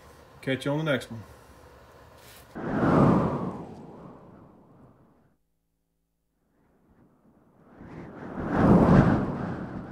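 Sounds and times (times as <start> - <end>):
deep whoosh boom: 2.6 - 5.1.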